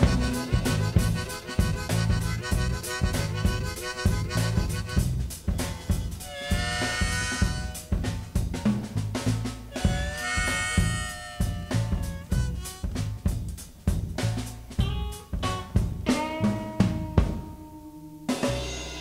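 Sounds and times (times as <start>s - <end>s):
held harmonica phrases: 0.0s - 8.4s, 9.6s - 13.8s, 14.8s - 18.3s
drum kit and bass groove: 0.0s - 19.0s.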